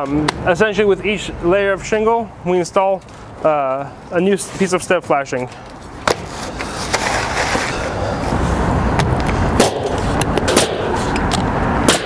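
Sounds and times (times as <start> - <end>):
steady rushing noise: 5.9 - 12.0
nail gun shots: 9.6 - 10.9.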